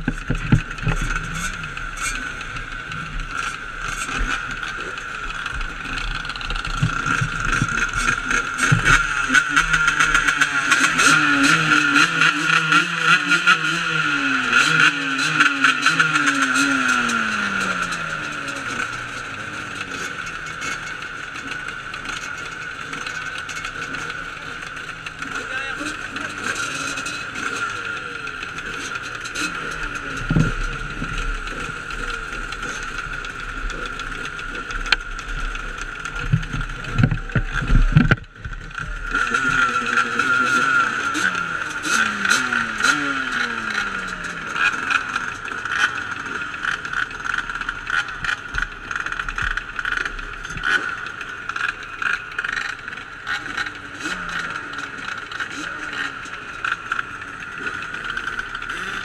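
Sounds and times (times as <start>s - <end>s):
dirt bike engines idling: 0.0s - 59.0s
dirt bike engines revving: 0.0s - 59.0s.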